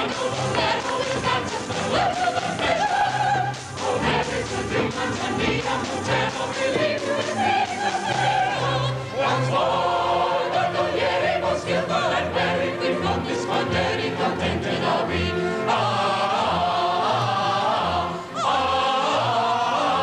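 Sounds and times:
mixed chorus singing: 0:00.0 - 0:20.0.

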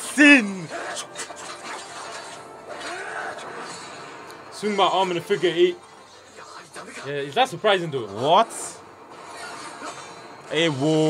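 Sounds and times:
quiet music and effects: 0:00.0 - 0:11.0.

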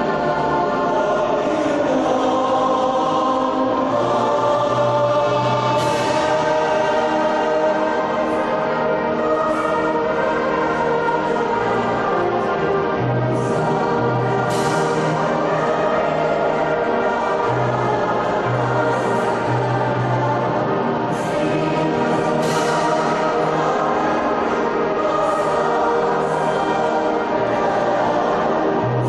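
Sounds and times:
choir singing sacred music: 0:00.0 - 0:29.0.

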